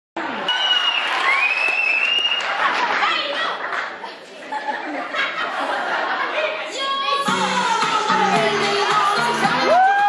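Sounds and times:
audience applauding: 0.6 - 3.8, 9.6 - 10.0.

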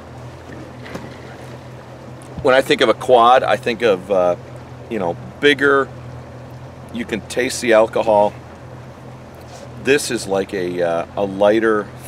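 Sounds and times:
boat motor humming: 0.0 - 12.0
open water noise: 0.0 - 12.0.

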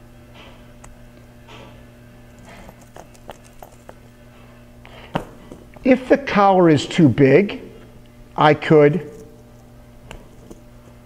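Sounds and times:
steady low hum: 0.0 - 11.0
metal collar links clinking: 2.4 - 4.0.

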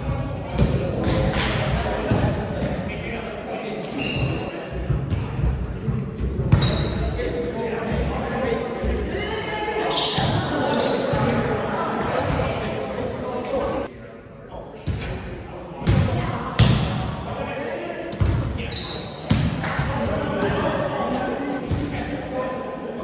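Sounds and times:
indistinct voices echoing in gym: 0.0 - 23.0.

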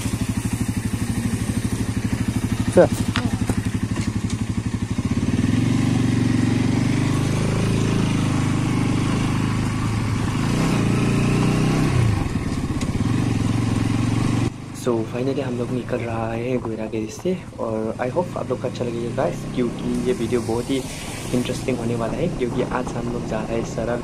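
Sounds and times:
motorcycle engine: 0.0 - 24.0.

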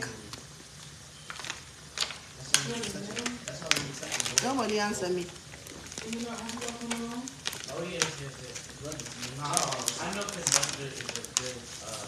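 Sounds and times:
food frying in hot oil: 0.0 - 12.0
oil popping and crackling: 0.0 - 12.0
person talking: 2.4 - 5.3, 6.0 - 12.0.

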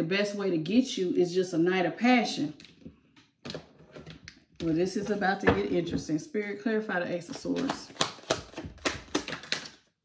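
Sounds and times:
cards being shuffled: 7.3 - 9.9.

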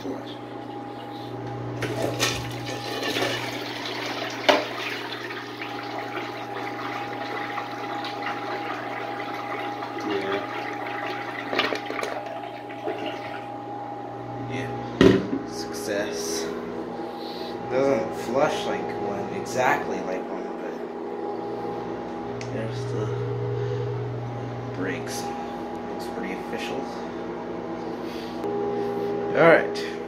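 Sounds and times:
steady low hum: 0.0 - 3.7, 9.5 - 30.0
toilet flushing: 0.0 - 13.7.

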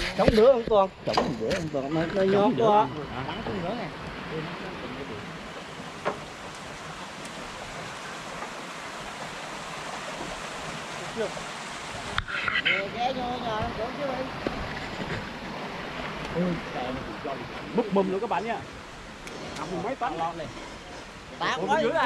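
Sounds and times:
wind on microphone: 0.0 - 2.4
men calling: 0.0 - 8.4, 15.7 - 22.0.

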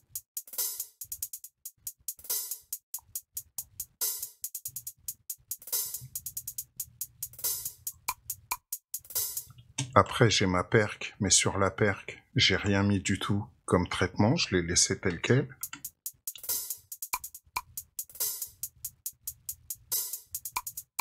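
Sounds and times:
hi-hat rolls: 0.0 - 9.5, 15.6 - 21.0
noisy hi-hat hit: 0.0 - 9.5, 15.6 - 21.0.

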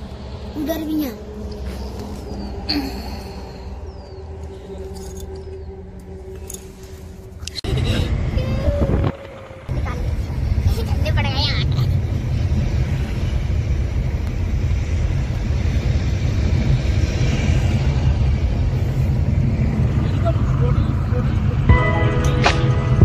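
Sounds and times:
car cabin engine and road rumble: 3.8 - 23.0.

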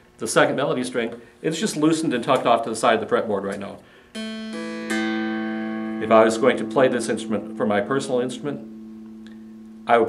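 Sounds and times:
dulcimer strings plucked: 4.2 - 10.0.

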